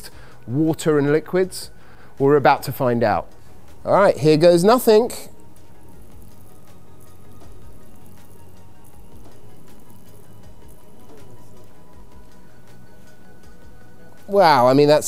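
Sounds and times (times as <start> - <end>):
soft background music: 0.0 - 15.0.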